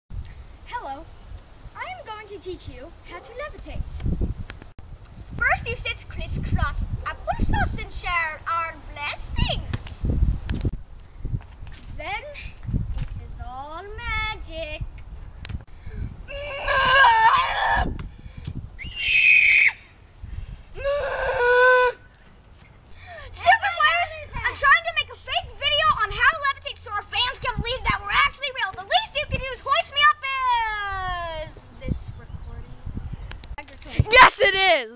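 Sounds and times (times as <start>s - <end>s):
boy speaking: 0.7s - 1.1s, 1.8s - 4.0s, 5.4s - 10.1s, 11.9s - 12.6s, 13.2s - 14.9s, 23.2s - 32.8s, 33.6s - 34.9s
wind rumble on microphone: 2.7s - 19.0s, 20.1s - 21.5s, 27.1s - 29.8s, 30.4s - 34.2s
children shrieking: 16.3s - 17.9s, 18.8s - 19.8s.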